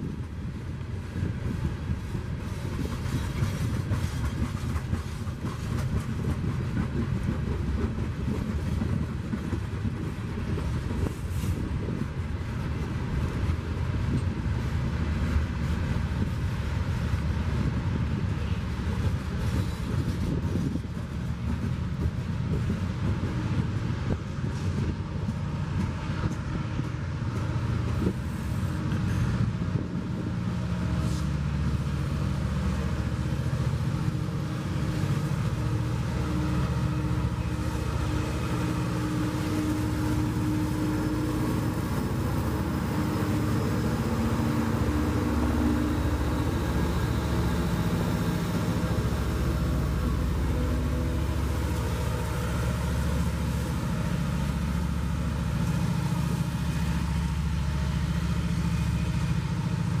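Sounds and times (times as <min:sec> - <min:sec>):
diesel locomotive engines droning: 0:00.0 - 1:00.0
train wheels rumbling on rails: 0:00.0 - 1:00.0.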